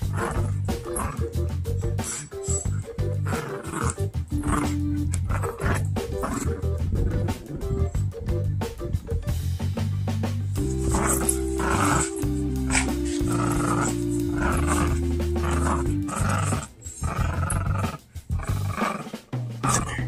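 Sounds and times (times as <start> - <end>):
dog growling: 0.0 - 8.2, 10.6 - 20.0
background music with low notes: 0.0 - 20.0.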